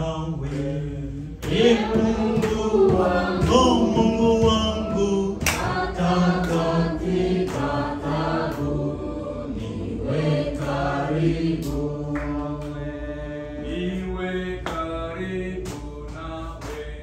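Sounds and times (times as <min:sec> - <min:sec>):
congregation singing a hymn: 0:00.0 - 0:17.0.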